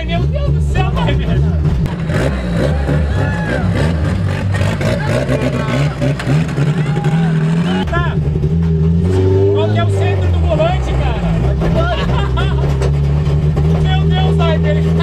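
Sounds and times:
car engine revving: 0.0 - 15.0.

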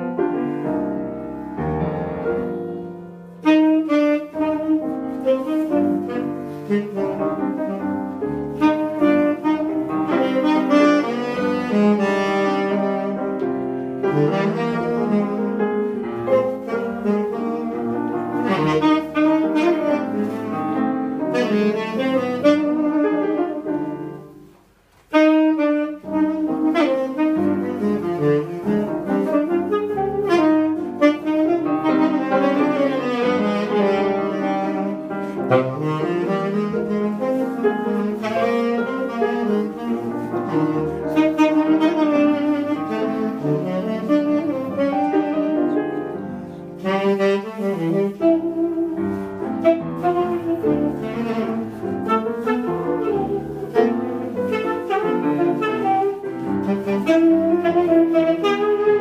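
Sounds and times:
grand piano accompaniment: 0.0 - 59.0
jazz saxophone melody: 0.0 - 59.0.

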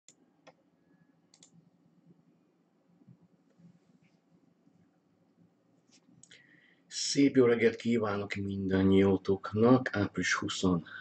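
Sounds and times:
computer mouse clicks: 1.3 - 1.6.

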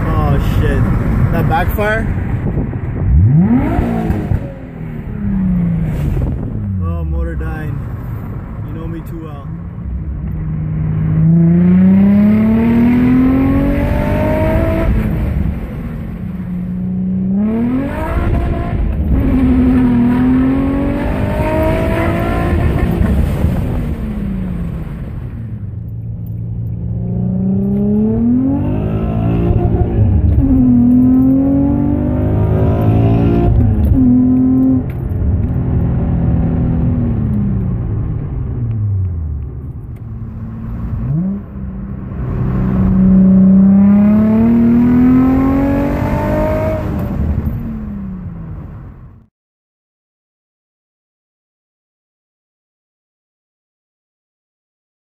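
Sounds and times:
car engine accelerating: 0.0 - 9.0, 9.6 - 49.2.

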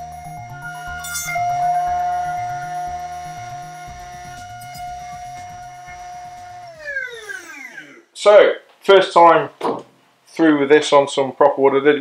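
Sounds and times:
background music with a beat: 0.0 - 6.9
router motor whining: 0.0 - 8.1.

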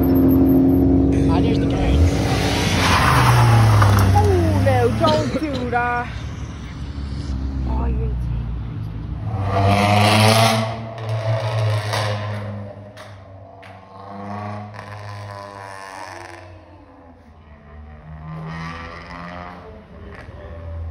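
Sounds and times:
car engines revving: 0.0 - 20.9.

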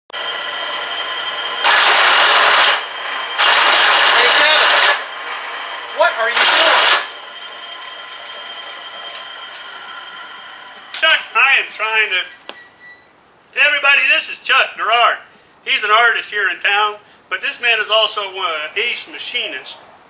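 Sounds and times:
drill press motor humming: 0.2 - 11.4
drill bit squeal: 4.1 - 13.1.

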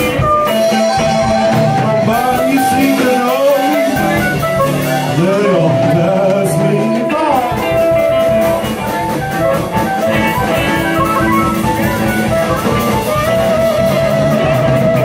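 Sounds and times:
drum kit steady beat: 0.0 - 15.0
electric guitar lead line: 0.0 - 15.0.

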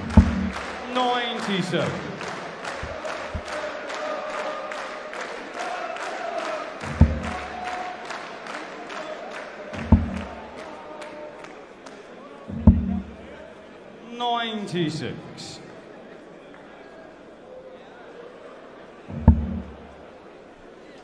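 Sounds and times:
crowd chanting and singing: 0.0 - 16.4, 17.9 - 21.0.

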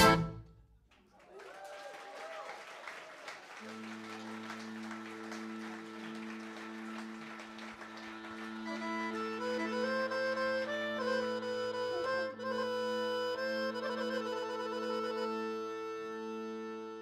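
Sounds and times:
accordion playing: 0.0 - 0.6, 3.6 - 17.0
audience applauding: 0.9 - 11.2.

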